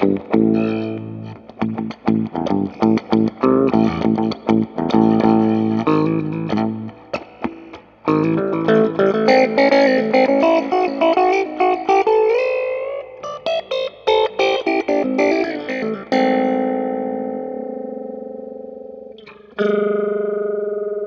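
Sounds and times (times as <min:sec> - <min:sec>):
electric guitar with phaser: 0:00.0 - 0:21.0.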